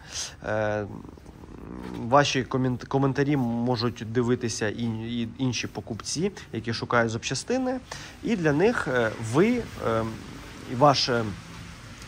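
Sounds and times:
man breathing: 0.0s - 0.4s, 7.8s - 8.2s.

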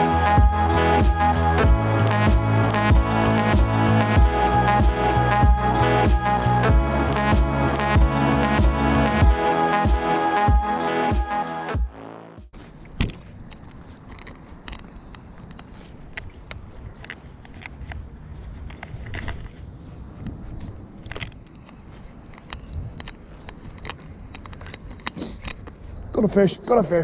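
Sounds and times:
background music: 0.0s - 12.5s
low outdoor rustle: 12.5s - 27.0s.

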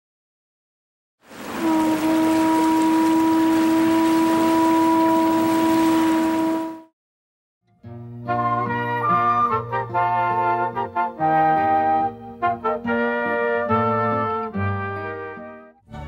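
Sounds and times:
rushing noise: 1.3s - 6.7s
long horn blast: 1.3s - 6.9s, 8.3s - 15.6s.

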